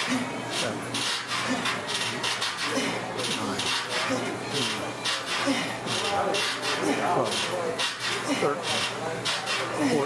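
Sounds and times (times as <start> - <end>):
man breathing rapidly: 2.6 - 3.1, 5.3 - 7.2, 9.8 - 10.0
man grunting: 9.8 - 10.0.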